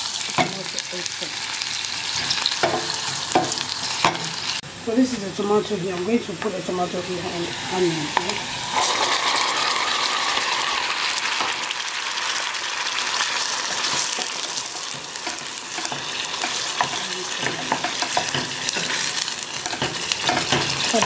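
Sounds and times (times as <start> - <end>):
onion and tomato sizzling in oil: 0.0 - 21.0
wooden spatula scraping and tapping: 13.6 - 21.0.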